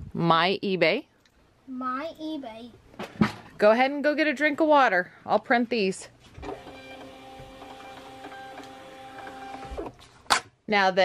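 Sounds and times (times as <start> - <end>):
label printer motor whine: 6.4 - 9.9.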